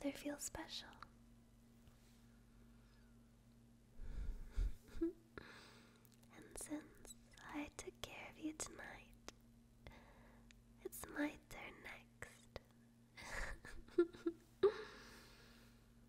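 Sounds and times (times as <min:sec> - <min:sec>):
woman whispering: 0:00.0 - 0:01.2, 0:06.3 - 0:09.4, 0:10.8 - 0:12.7.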